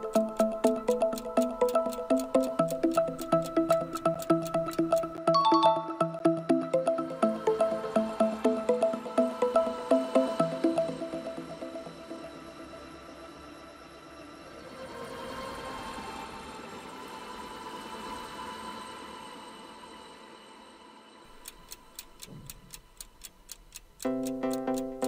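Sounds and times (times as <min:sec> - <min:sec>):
clock ticking: 0:00.0 - 0:05.2, 0:21.3 - 0:25.0
soft background music: 0:00.0 - 0:25.0.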